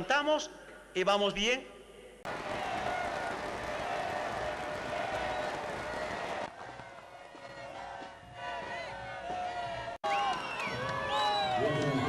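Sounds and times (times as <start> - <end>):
crowd shouting and cheering: 2.3 - 12.0.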